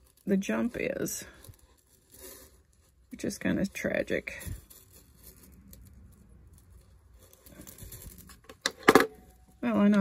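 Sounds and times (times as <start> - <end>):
soft rustle of metal: 0.0 - 8.6.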